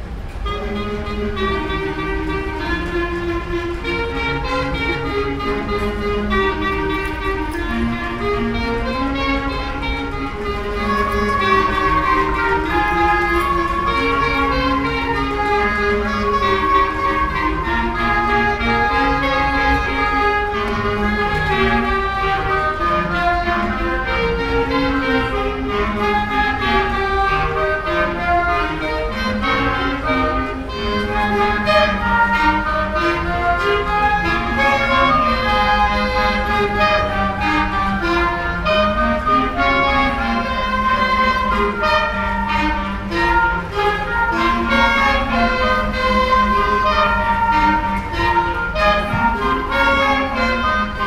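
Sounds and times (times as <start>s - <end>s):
clarinet ensemble playing chords: 0.0s - 51.0s.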